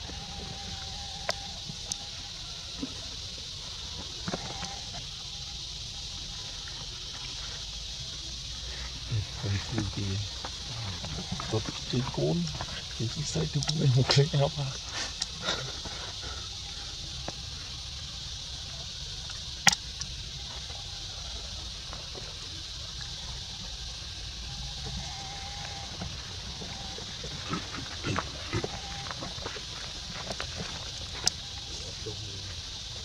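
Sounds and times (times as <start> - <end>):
steady high hiss: 0.0 - 33.0
macaques calling softly: 8.0 - 18.9, 24.4 - 32.7
rustling on dry leaves: 24.4 - 33.0.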